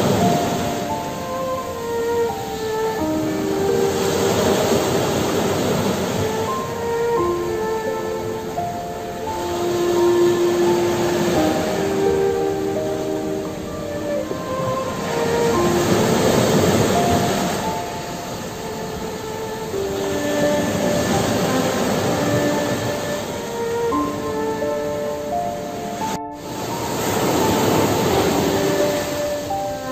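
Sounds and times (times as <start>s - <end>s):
sea waves washing over rocks: 0.0s - 25.3s, 25.9s - 29.9s
soft relaxation music: 0.0s - 29.9s.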